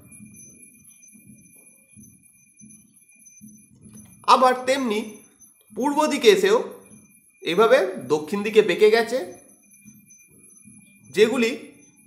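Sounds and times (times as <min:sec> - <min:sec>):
thin high whine: 0:00.0 - 0:12.0.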